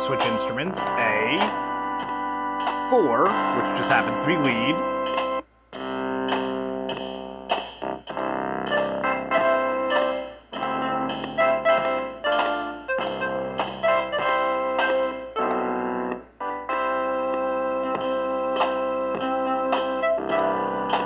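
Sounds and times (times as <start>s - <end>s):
synth lead melody: 0.0s - 21.0s
synthesizer loop of drums bass chords: 0.0s - 21.0s.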